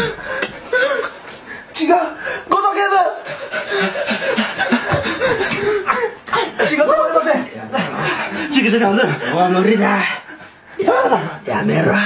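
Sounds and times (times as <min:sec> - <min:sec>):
people chuckling: 0:03.2 - 0:06.6
people speaking: 0:10.8 - 0:12.0.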